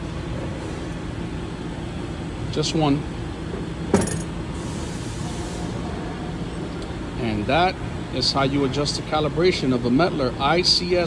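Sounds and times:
weight thumping on scale platform: 3.9s - 4.3s.

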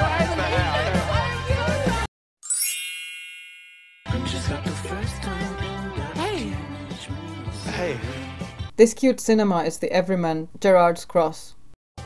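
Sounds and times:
bright bell-like ding: 2.4s - 4.2s.

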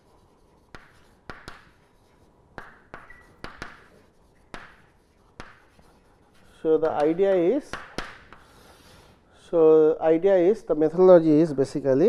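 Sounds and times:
chalk tapping on blackboard: 0.0s - 8.7s
chalk scratching: 0.0s - 9.1s.

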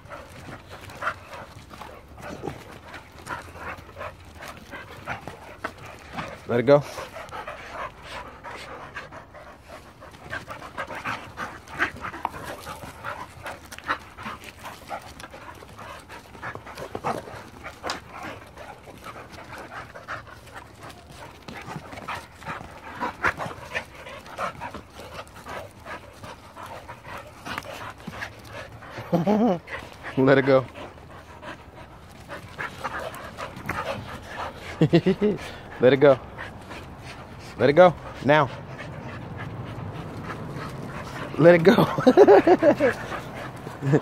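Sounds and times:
dogs panting hard: 0.0s - 44.0s.

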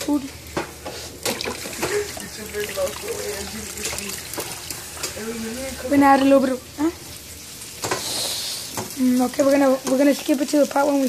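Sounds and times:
small clicks and splashes: 0.5s - 5.2s
water trickling into metal sink: 1.2s - 6.6s.

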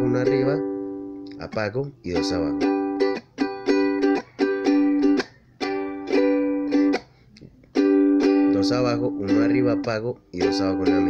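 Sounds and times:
ukulele strumming: 0.0s - 11.0s.

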